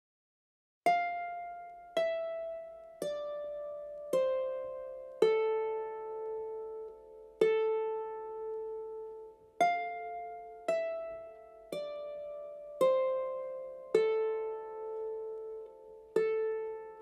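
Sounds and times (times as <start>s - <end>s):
harp plucked notes: 0.9s - 17.0s.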